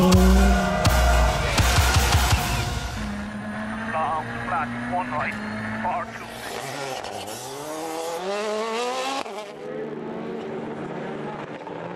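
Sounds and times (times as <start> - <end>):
car engine accelerating hard: 0.0 - 11.9.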